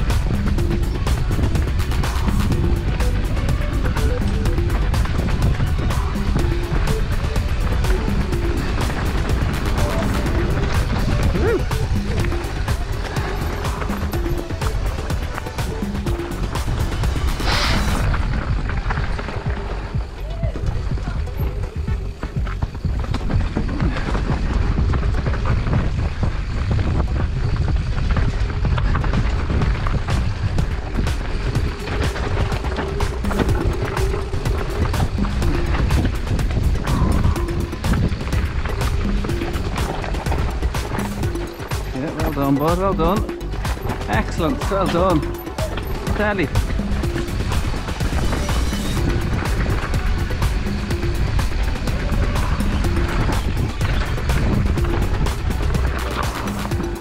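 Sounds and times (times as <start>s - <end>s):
bike rattling over roots and rocks: 0.0s - 57.0s
bike tyres on dirt: 0.0s - 57.0s
wind rushing over microphone: 0.0s - 57.0s.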